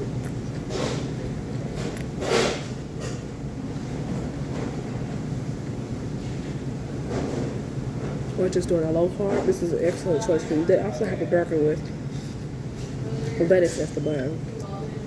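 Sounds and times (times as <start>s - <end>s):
restaurant background hum: 0.0s - 15.0s.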